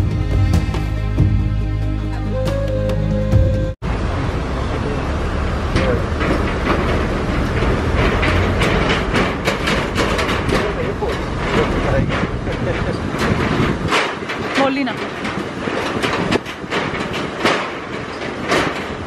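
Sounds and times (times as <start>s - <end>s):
vehicle rumbling across steel bridge: 3.6s - 19.0s
rattles and knocks: 5.6s - 19.0s.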